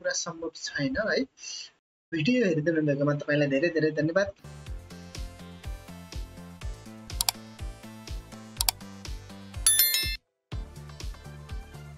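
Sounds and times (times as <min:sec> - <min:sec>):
high bell-like chime: 0:09.7 - 0:10.2
sharp click effects: 0:09.7 - 0:10.2.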